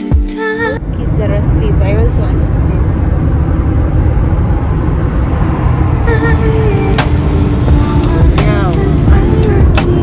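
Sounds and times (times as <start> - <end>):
road and wind noise in car: 0.4 - 10.0.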